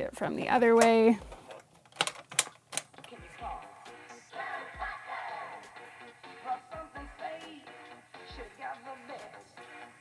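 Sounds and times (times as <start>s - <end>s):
sharp plastic clicks: 0.8s - 3.2s.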